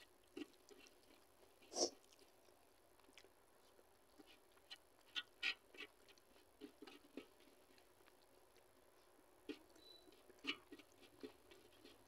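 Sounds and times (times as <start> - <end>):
fingers mixing food on steel plate: 3.6 - 12.0.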